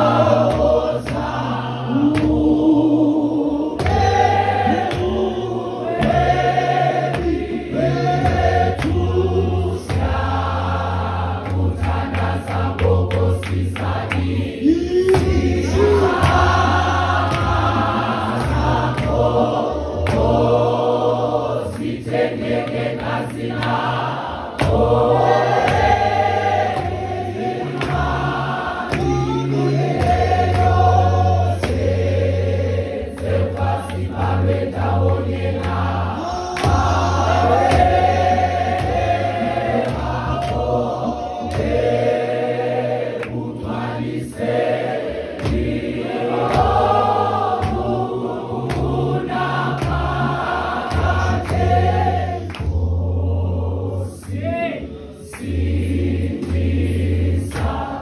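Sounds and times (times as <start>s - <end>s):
choir singing a hymn: 0.0s - 58.0s
sharp beats: 34.2s - 43.1s.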